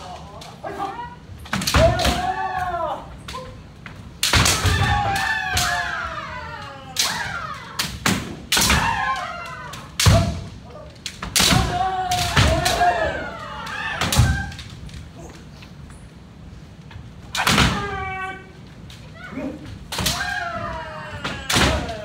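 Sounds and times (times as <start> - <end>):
people shouting: 0.0 - 15.4, 17.3 - 22.0.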